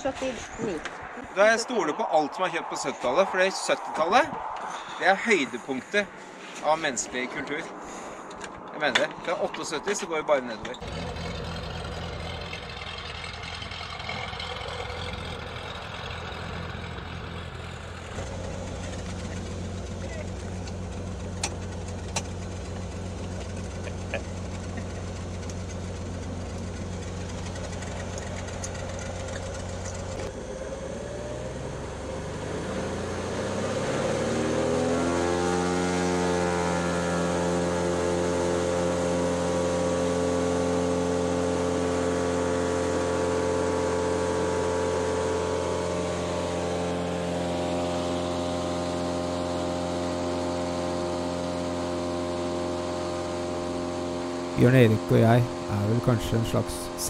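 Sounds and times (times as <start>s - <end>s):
plane engine and propeller revving: 0.0s - 57.0s.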